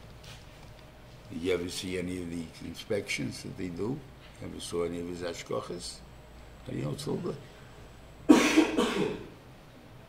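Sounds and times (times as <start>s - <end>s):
person coughing: 8.3s - 9.4s.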